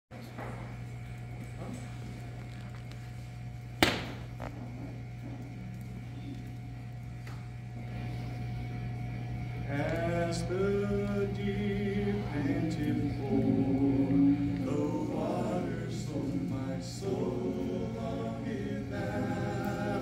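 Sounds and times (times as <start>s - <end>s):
steady low hum: 0.1s - 20.0s
sharp knock: 3.8s - 4.2s
man singing unaccompanied: 9.7s - 20.0s.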